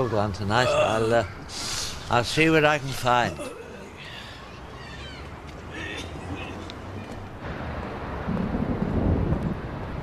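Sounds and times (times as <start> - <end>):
low rumble of thunder: 7.4 - 10.0.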